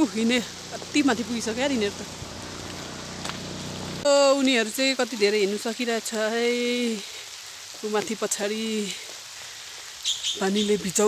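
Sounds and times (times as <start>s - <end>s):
woman speaking: 0.0s - 2.1s, 4.1s - 7.1s, 7.8s - 9.0s, 10.4s - 11.0s
faint hiss: 0.0s - 11.0s.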